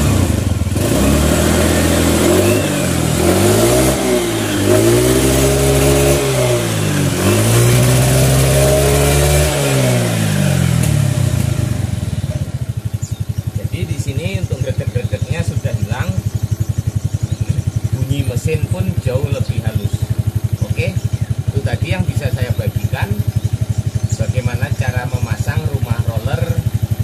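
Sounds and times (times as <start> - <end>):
scooter engine revving and idling: 0.0 - 27.0.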